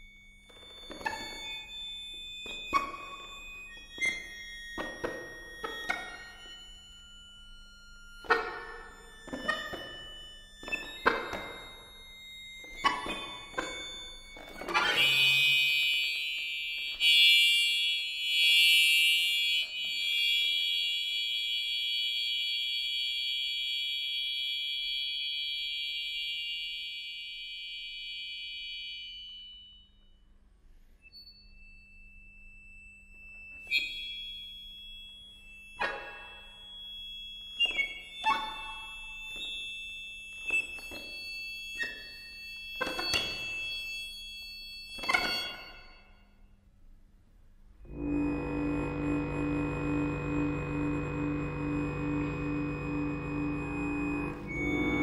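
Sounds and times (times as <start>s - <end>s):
accordion reed cluster: 0.0s - 20.6s, 47.9s - 55.0s
sharp accordion chord stabs: 47.9s - 55.0s
soft low accordion note: 47.9s - 55.0s.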